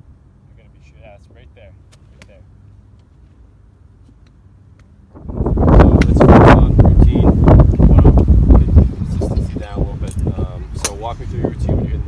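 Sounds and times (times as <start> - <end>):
wind buffeting microphone: 5.0 - 12.0.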